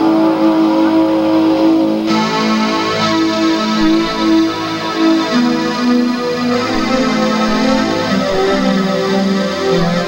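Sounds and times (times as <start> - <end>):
distorted electric guitar: 2.1 - 10.0.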